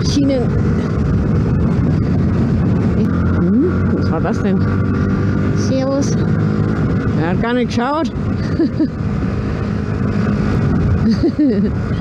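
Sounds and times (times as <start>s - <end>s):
motorcycle engine running: 0.0s - 12.0s
wind rush: 0.0s - 12.0s.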